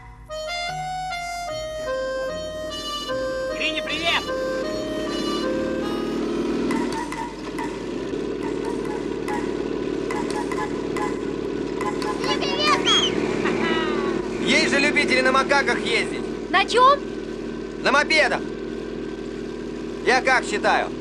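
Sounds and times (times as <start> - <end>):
motorcycle engine running: 0.0 - 21.0
voices: 3.5 - 4.4, 10.4 - 17.1.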